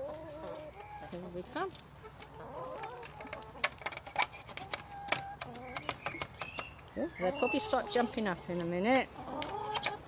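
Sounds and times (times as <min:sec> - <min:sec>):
hens clucking: 0:00.0 - 0:10.0.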